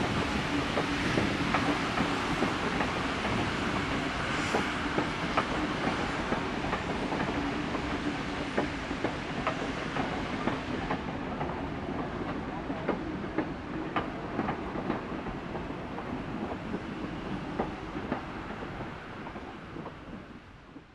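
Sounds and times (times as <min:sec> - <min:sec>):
train rolling rumble: 0:00.0 - 0:20.9
train wheels clickety-clack: 0:00.0 - 0:20.9.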